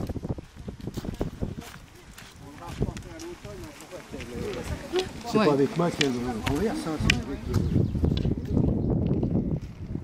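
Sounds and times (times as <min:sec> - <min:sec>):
walking poles clicking on gravel: 0:00.0 - 0:09.8
footsteps on gravel: 0:00.0 - 0:10.0
wind noise: 0:00.0 - 0:10.0.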